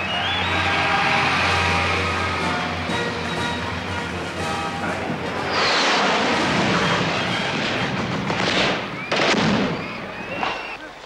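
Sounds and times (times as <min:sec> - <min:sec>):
jet aircraft roar: 0:00.0 - 0:10.8.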